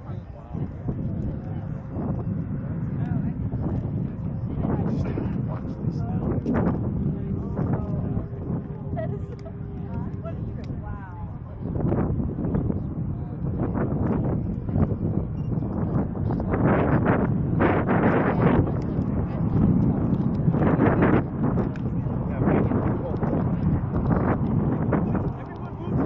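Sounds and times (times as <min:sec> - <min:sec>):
crowd voices: 0:00.0 - 0:26.0
wind buffeting microphone: 0:00.0 - 0:26.0.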